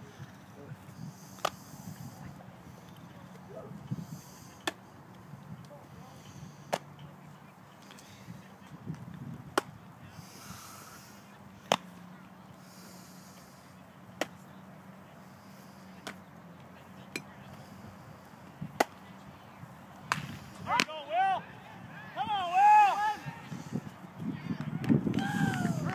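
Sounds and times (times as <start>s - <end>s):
baseball smacking into glove: 20.0s - 20.9s.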